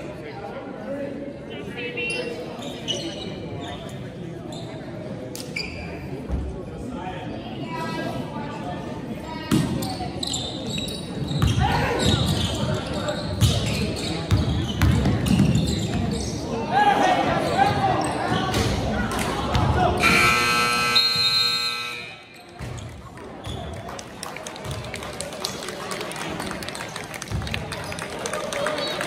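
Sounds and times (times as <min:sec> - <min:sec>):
buzzer: 0:20.0 - 0:22.3.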